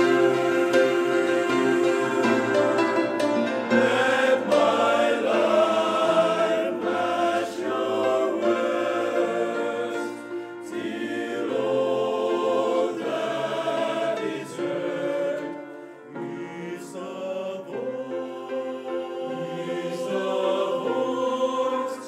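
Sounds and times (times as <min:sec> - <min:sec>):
men's choir singing a hymn: 0:00.0 - 0:22.0.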